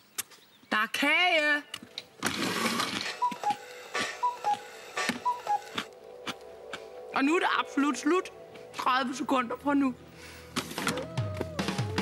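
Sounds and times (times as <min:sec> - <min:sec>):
cuckoo clock call: 0:03.1 - 0:05.9.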